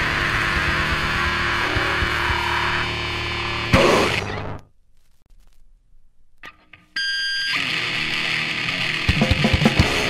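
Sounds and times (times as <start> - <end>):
distorted electric guitar: 0.0 - 4.7, 6.4 - 10.0.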